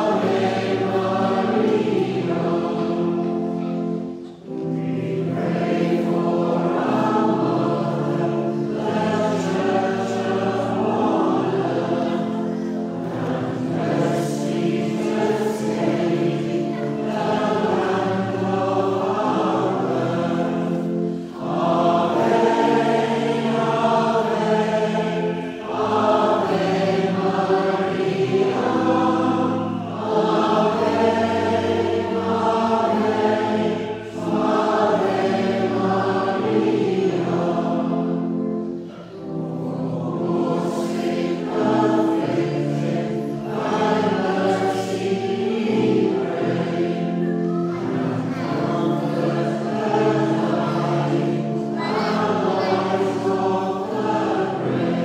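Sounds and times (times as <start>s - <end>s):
choir singing a hymn: 0.0s - 55.0s.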